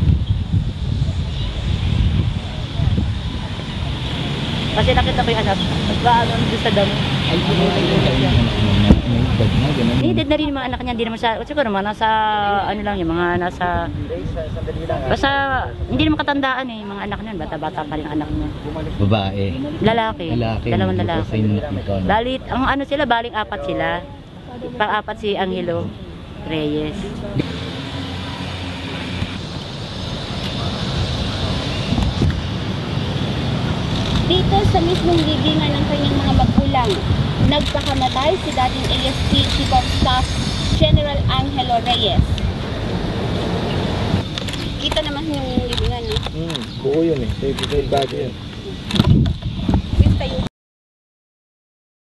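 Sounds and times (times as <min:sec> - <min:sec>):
steady background noise: 0:00.0 - 0:50.5
people talking indistinctly: 0:04.7 - 0:28.5, 0:34.1 - 0:42.4, 0:44.4 - 0:48.9.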